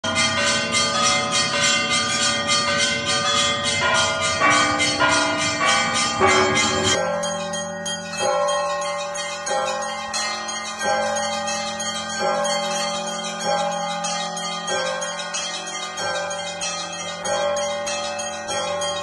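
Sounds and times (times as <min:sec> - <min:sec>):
church bells pealing: 0:00.0 - 0:19.0
deep bell strikes: 0:00.1 - 0:10.2.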